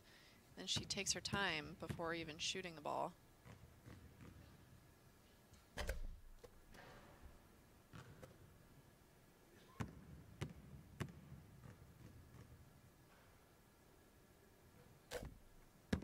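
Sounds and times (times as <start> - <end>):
ball bouncing: 0.7 - 2.6, 3.4 - 4.8, 7.9 - 8.4, 9.8 - 12.6
basketball dribbles on hardwood: 0.7 - 2.6, 3.4 - 4.8, 9.8 - 12.6.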